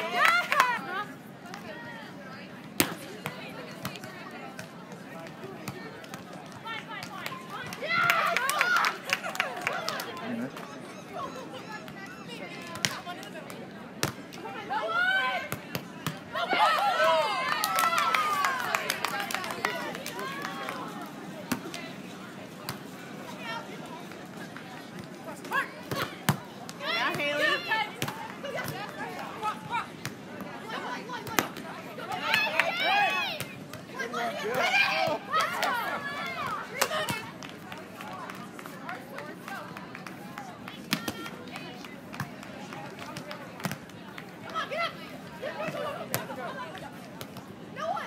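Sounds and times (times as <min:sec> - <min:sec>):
people calling and chatting: 0:00.0 - 0:48.0.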